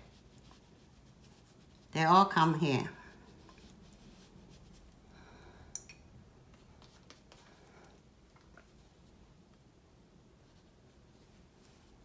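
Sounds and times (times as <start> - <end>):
brush stroking paper: 0.0 - 5.0, 10.4 - 12.0.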